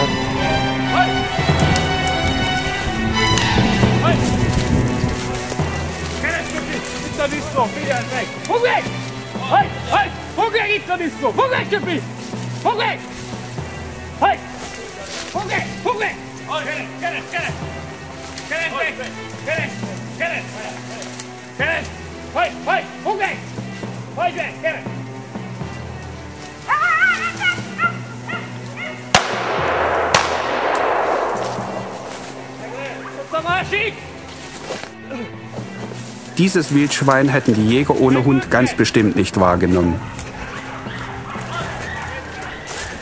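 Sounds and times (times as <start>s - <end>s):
background music: 0.0s - 43.0s
gunshots: 29.1s - 33.3s
rushing noise: 29.3s - 33.3s.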